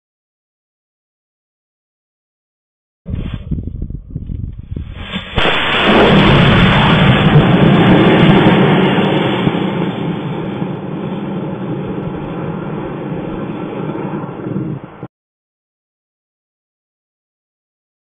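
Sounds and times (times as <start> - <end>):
rocket motor rushing: 4.9 - 10.2.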